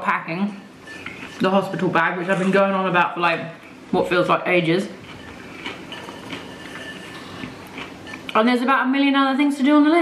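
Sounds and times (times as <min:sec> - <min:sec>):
steady background noise: 0:00.0 - 0:10.0
person chewing crunchy food: 0:04.9 - 0:08.4.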